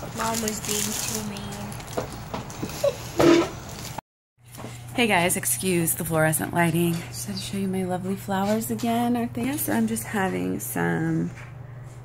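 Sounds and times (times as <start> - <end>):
steady low hum: 4.5 - 12.0.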